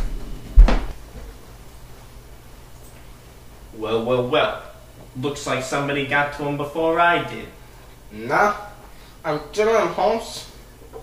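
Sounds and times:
door shutting with heavy thud: 0.0 - 1.0
low steady hum: 0.0 - 11.0.

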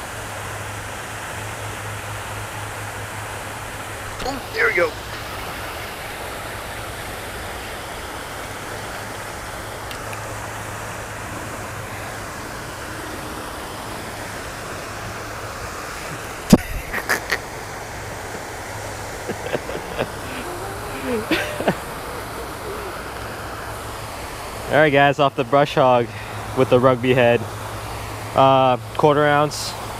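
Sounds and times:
fountain water falling: 0.0 - 29.9.

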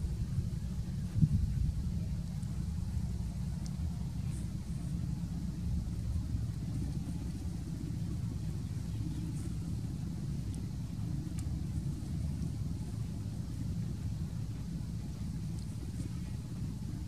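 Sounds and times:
steady low rumble: 0.0 - 17.0
faint high ticks: 2.3 - 2.6, 3.6 - 4.9, 8.8 - 13.1, 14.4 - 16.8.

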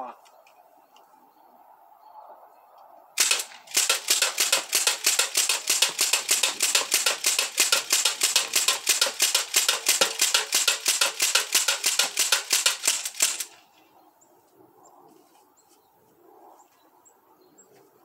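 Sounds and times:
air rifle shots: 3.2 - 13.7.

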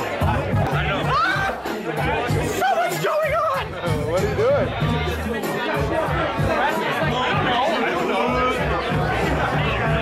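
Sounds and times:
background music: 0.0 - 10.0
people talking: 0.0 - 10.0.

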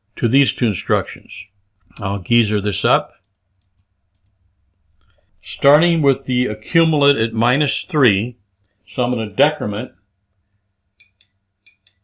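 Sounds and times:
faint computer mouse clicks: 3.2 - 5.2.

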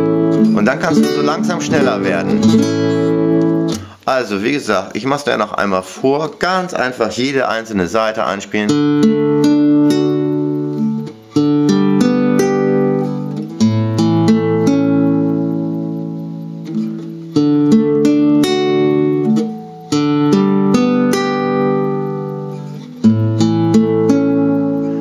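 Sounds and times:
classical guitar picked chords: 0.0 - 25.0.

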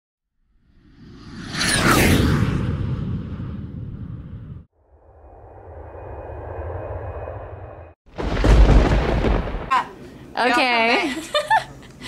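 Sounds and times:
airplane engine drone: 0.8 - 8.0.

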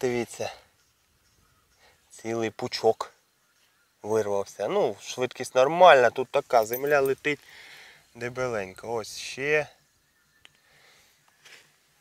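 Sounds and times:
faint click: 10.4 - 10.6.

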